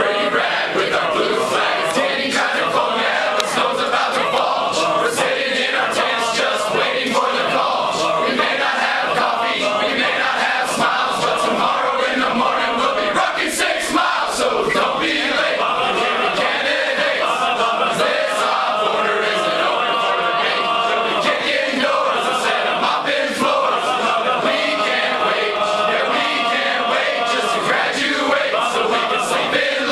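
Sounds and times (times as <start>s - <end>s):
men singing in unison: 0.0s - 29.9s.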